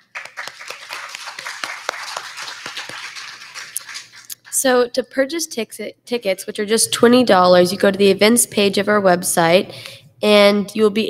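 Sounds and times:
congregation clapping: 0.0 - 4.7.

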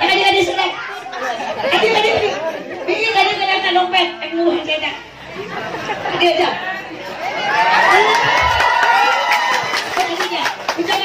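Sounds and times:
people talking at once: 0.0 - 8.6.

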